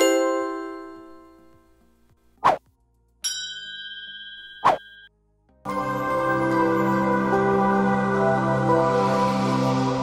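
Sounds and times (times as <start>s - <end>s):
bell-like chime: 3.2s - 5.1s.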